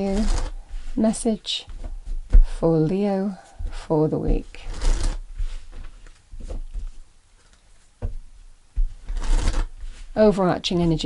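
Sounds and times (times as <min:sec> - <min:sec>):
cards being shuffled by hand: 0:00.0 - 0:02.4, 0:03.6 - 0:07.9, 0:08.8 - 0:11.0.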